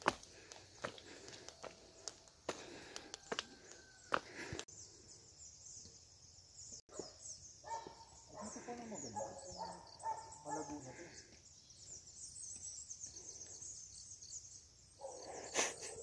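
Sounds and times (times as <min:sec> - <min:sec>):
high-pitched wildlife chirping: 0:03.7 - 0:16.0.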